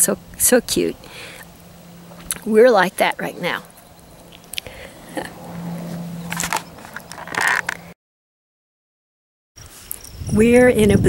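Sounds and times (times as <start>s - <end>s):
dry grass rustling against microphone: 0.2s - 7.9s.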